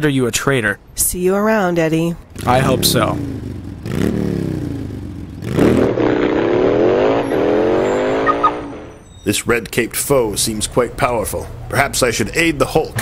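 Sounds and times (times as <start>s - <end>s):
car engine accelerating: 2.3s - 9.0s.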